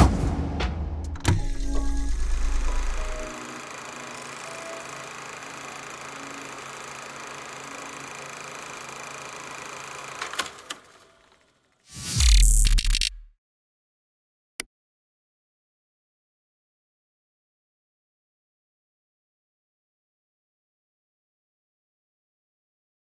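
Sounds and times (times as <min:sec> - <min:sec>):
clicks: 0:12.2 - 0:13.3.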